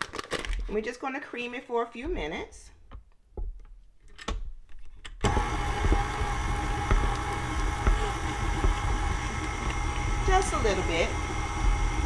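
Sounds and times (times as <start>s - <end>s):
stand mixer creaming butter: 5.2s - 12.0s.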